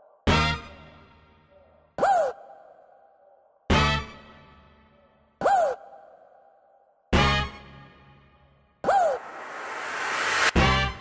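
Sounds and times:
swooping synth stab: 0:09.1 - 0:10.7.

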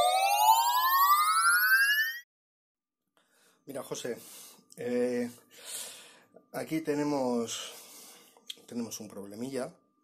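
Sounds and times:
synthesized rising pitch sweep: 0:00.0 - 0:02.3.

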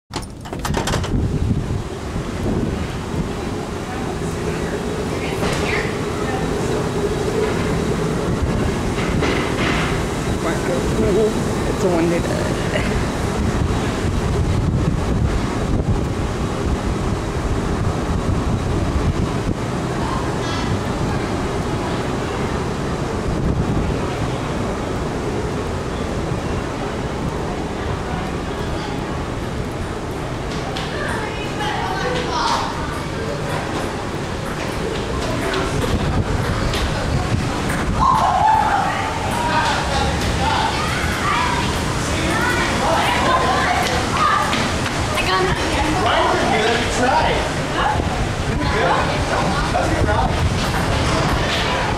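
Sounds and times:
metal door latch clicking: 0:00.1 - 0:01.2
low rumbling noise: 0:00.1 - 0:51.9
wind buffeting microphone: 0:00.1 - 0:51.9.

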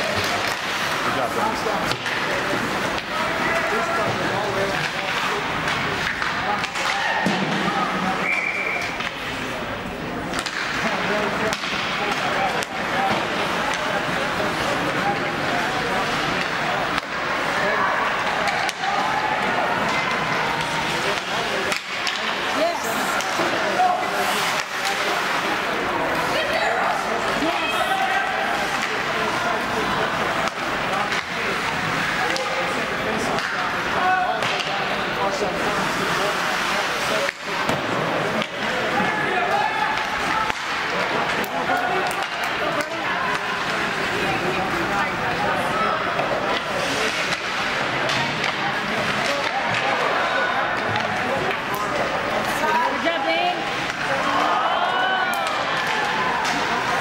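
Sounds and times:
hockey sticks and puck clacking: 0:00.0 - 0:57.0
indistinct voices: 0:00.0 - 0:57.0.

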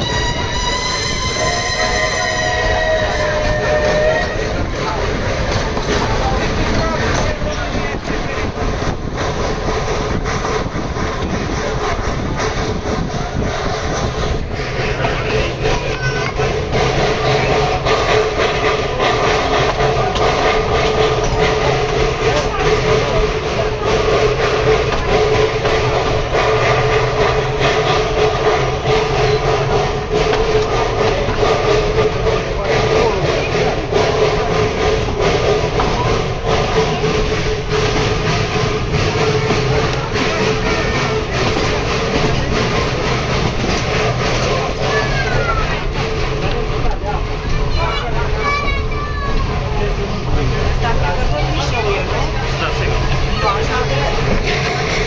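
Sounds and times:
train wheels clattering on rails: 0:00.0 - 0:55.0.

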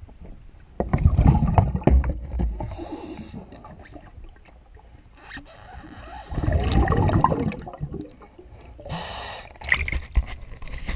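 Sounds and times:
underwater air bubbles: 0:00.8 - 0:05.0, 0:06.3 - 0:08.9.

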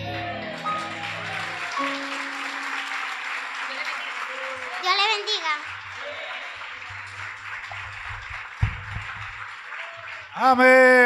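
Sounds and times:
congregation applauding: 0:00.0 - 0:11.0
low thump: 0:08.6 - 0:09.2.

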